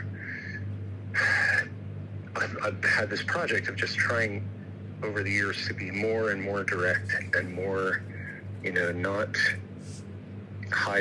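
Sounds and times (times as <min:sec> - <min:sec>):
steady low hum: 0:00.0 - 0:11.0
man breathing in sharply: 0:00.2 - 0:00.6.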